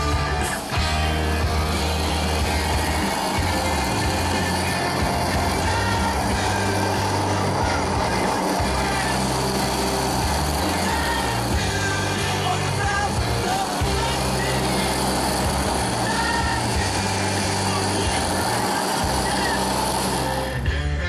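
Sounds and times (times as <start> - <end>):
blender whirring: 0.0 - 20.7
rock music: 0.0 - 21.0.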